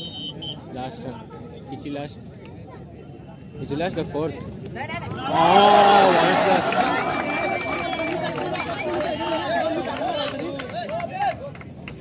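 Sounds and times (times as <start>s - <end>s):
crowd shouting: 5.1s - 10.5s.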